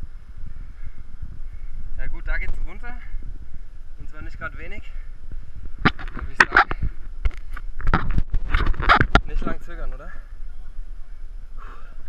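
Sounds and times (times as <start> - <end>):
wind noise: 0.0 - 12.0
sharp knocks and rustles: 5.7 - 9.3.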